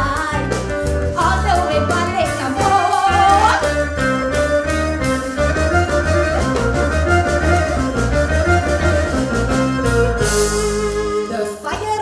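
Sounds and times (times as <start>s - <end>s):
electric bass line: 0.0s - 11.4s
steady drum beat: 0.0s - 12.0s.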